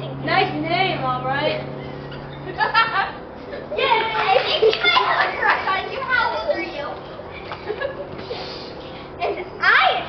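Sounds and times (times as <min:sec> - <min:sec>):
children calling out: 0:03.8 - 0:07.0
children clapping: 0:04.1 - 0:05.6.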